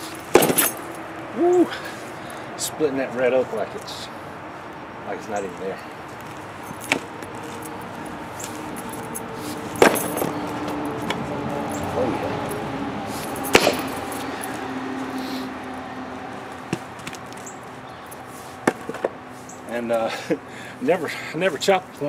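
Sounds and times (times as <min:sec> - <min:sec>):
axe chopping wood: 0:00.3 - 0:00.6, 0:09.8 - 0:10.2, 0:13.5 - 0:13.9.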